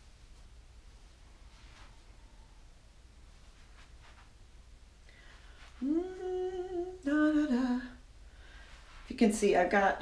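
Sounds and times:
woman humming: 5.8s - 8.0s.

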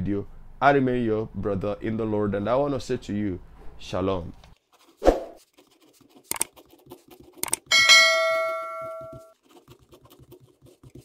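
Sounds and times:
notification bell ding: 7.7s - 9.3s.

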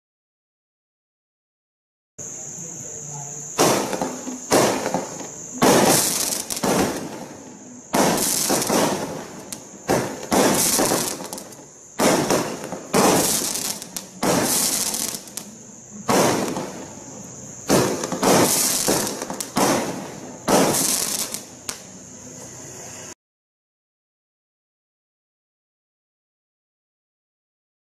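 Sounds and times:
firework bangs with crackle: 3.4s - 21.9s.

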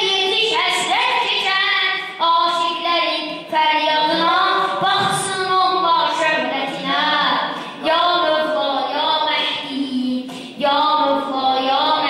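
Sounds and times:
boy singing religious chant: 0.0s - 12.0s.

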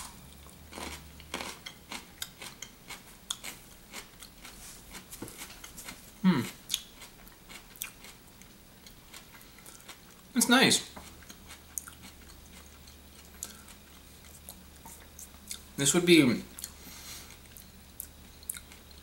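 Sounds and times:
chewing crunchy fruit: 0.0s - 15.8s, 16.4s - 19.0s.

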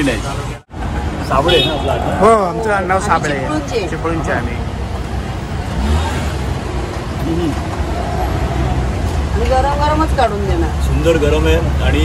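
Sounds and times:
passing vehicle engine rumble: 0.0s - 12.0s
steady road din: 0.0s - 12.0s.

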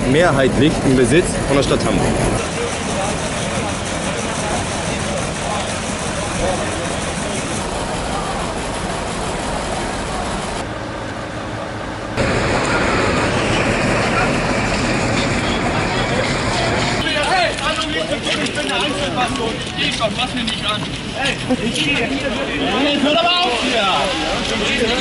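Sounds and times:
traffic rushing: 0.0s - 25.0s.

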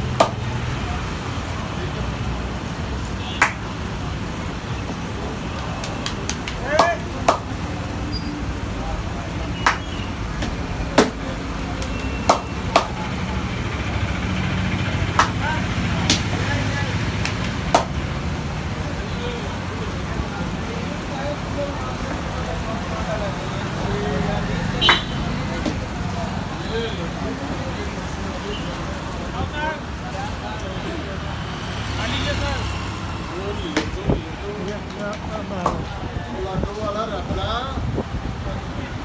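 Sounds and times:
faint voices chattering: 0.0s - 39.0s
traffic running past: 0.0s - 39.0s.

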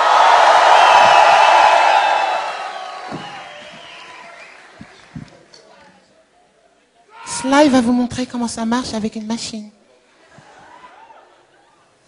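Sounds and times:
concert audience cheering: 0.0s - 5.4s.

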